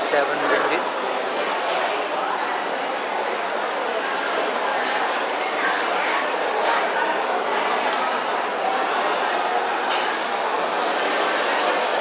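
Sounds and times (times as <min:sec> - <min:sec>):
babble of diners talking: 0:00.0 - 0:12.0.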